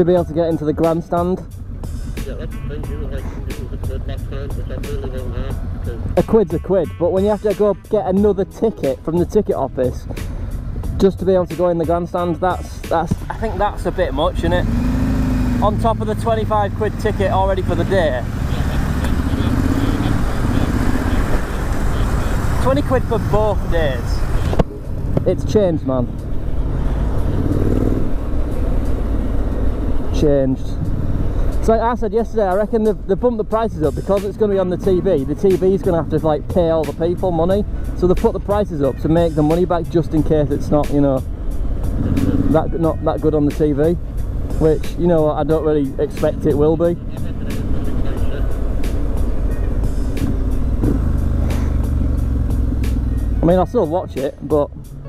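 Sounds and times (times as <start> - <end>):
motorcycle engine running: 0.2 - 6.3, 10.0 - 31.7, 32.4 - 55.0.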